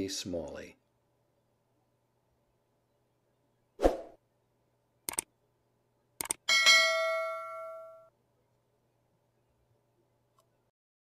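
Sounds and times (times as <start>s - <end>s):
double mouse click: 5.1s - 5.3s, 6.2s - 6.4s
notification bell ding: 6.5s - 8.1s.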